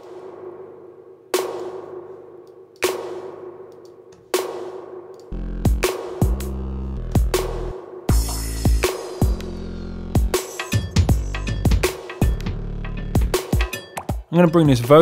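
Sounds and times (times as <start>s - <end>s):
snare drum hits with reverb: 1.4s - 2.0s, 2.8s - 3.5s
electronic drum pattern with kick: 2.8s - 15.0s.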